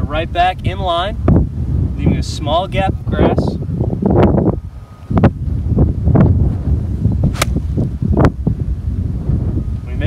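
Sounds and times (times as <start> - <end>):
wind buffeting microphone: 0.0 - 10.0
golf club striking ball and turf: 7.3 - 8.0.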